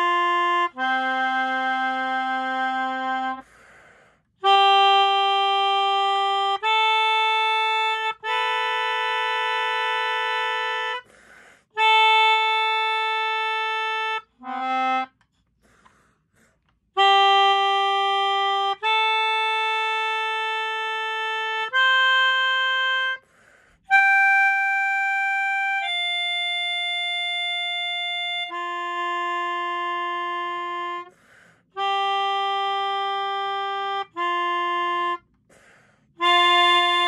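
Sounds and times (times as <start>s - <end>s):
melodica melody: 0.0s - 3.8s, 4.4s - 15.6s, 16.8s - 37.0s.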